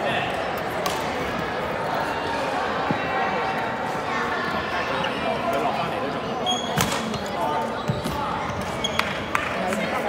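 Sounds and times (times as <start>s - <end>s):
shoes squeaking on floor: 6.4s - 9.4s.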